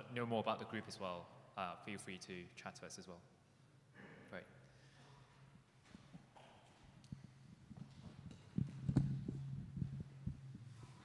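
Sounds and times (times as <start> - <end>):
low electrical hum: 0.0 - 11.0
microphone handling thumps: 7.1 - 10.8.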